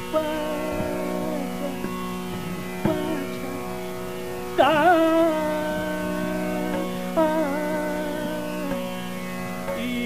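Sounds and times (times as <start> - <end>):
person singing wavering phrase: 0.0 - 2.0, 2.8 - 3.7, 4.6 - 8.8
tanpura drone: 0.0 - 10.0.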